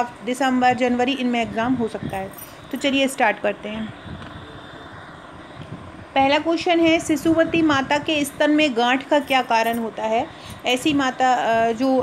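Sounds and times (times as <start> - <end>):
faint rumble and hiss: 0.0 - 12.0.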